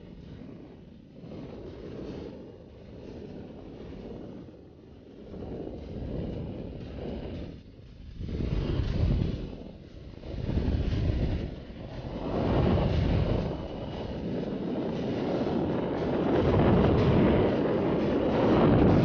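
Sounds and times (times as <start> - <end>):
rushing wind buffeting microphone: 0.0 - 19.0.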